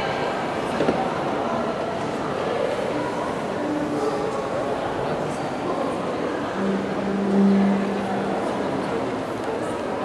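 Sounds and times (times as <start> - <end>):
background murmur: 0.0 - 10.0
cello holding low note: 6.5 - 9.3.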